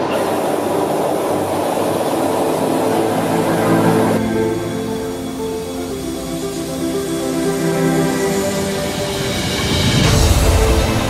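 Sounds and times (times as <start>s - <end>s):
band saw running with high hiss: 0.0s - 11.0s.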